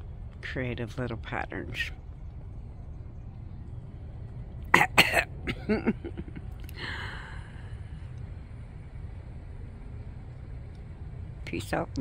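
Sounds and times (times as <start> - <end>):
low outdoor background: 0.0 - 12.0
woman coughing: 4.7 - 6.0.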